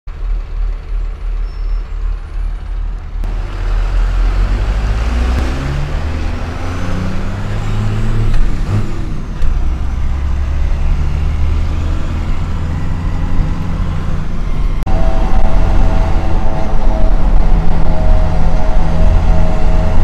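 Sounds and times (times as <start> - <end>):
diesel truck engine: 0.1 - 20.0.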